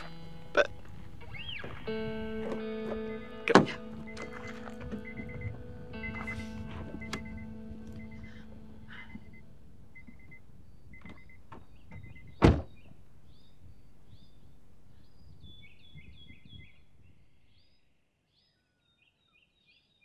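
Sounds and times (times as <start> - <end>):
car chime beeps: 0.0 - 12.4
birds chirping: 0.0 - 20.0
car door shutting: 2.4 - 9.3, 10.0 - 12.9.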